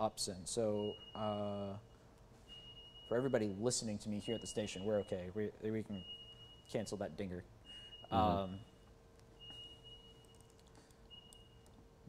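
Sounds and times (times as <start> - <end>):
faint low hum: 0.0 - 12.0
high electronic alert beep: 7.7 - 8.7.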